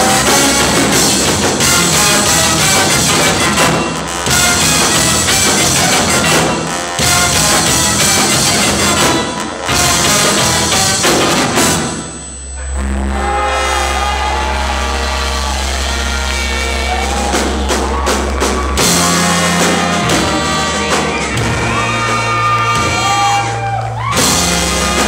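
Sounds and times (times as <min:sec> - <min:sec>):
live band with brass section: 0:00.0 - 0:25.0.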